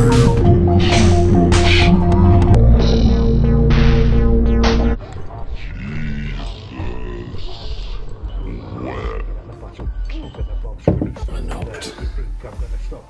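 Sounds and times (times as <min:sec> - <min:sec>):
loud droning music: 0:00.0 - 0:07.4
faint eerie background: 0:00.0 - 0:10.8
deep voice growling and grunting: 0:05.3 - 0:09.6.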